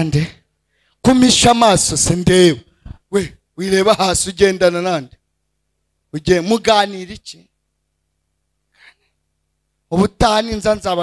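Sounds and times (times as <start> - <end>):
man speaking: 0.0 - 0.4, 1.0 - 5.2, 6.1 - 7.5, 9.9 - 11.0
faint breath into microphone: 0.6 - 1.0.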